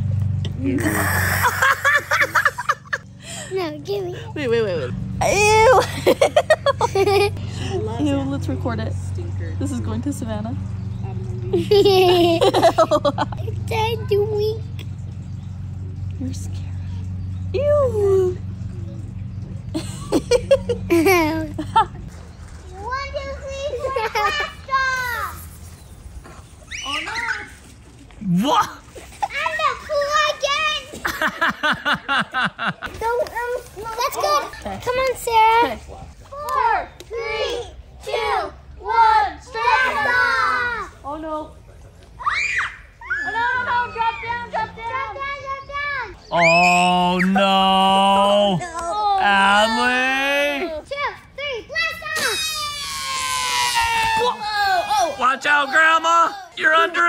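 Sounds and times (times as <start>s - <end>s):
child and woman giggling: 0.6s - 3.0s, 5.2s - 7.4s, 11.5s - 13.4s, 19.8s - 22.0s
children squealing in play: 26.6s - 27.8s, 42.2s - 47.4s, 51.8s - 56.6s.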